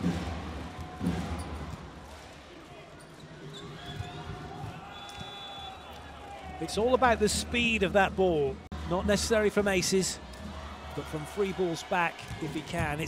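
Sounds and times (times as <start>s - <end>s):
arena crowd noise: 0.0s - 13.0s.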